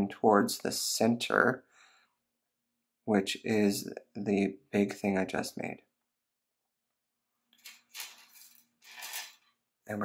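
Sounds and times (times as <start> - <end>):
wire scraping rustles: 7.6 - 9.5.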